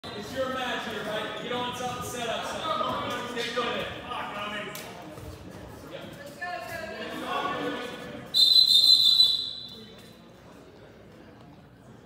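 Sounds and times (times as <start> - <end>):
referee's whistle blast: 8.4 - 9.8.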